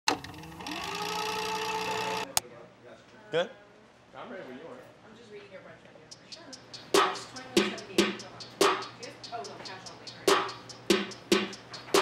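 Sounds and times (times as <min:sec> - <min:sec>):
mechanical whirring hum: 0:00.1 - 0:02.4.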